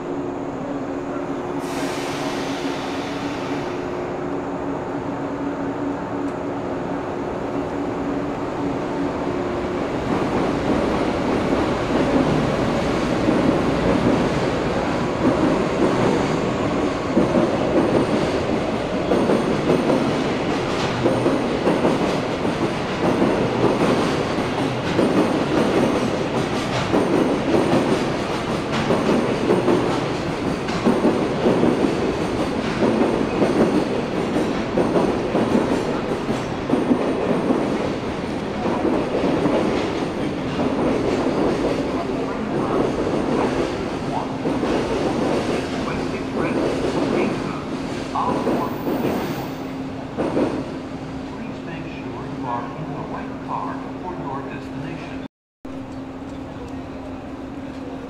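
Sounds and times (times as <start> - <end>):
train rumble: 0.0 - 58.0.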